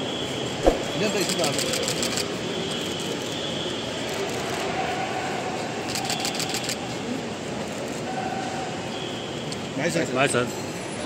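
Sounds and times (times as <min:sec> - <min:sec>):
traffic: 0:00.0 - 0:11.0
crowd noise: 0:00.5 - 0:09.0.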